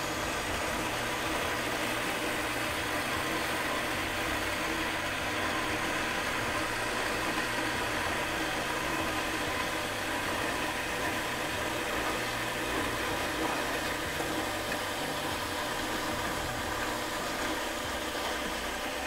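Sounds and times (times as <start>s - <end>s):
band saw running: 0.0s - 19.0s.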